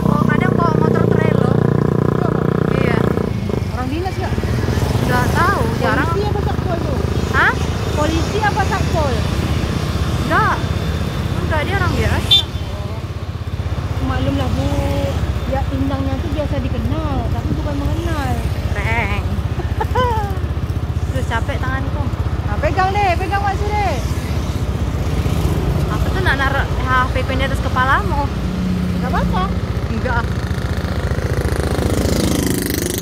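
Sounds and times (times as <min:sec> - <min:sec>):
motorcycle engine running: 0:00.0 - 0:33.0.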